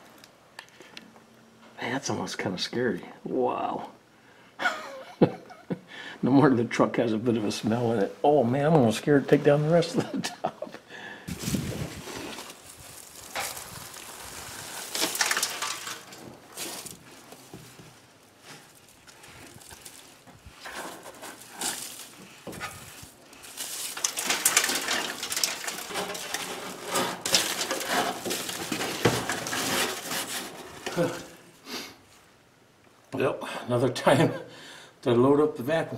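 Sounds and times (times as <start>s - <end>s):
dry debris crackling and rustling: 11.3s - 31.6s
plastic bag rustling: 11.3s - 31.6s.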